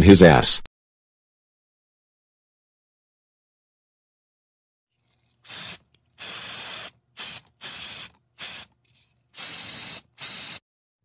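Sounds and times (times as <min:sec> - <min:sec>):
spray paint can hissing: 0:05.4 - 0:10.6.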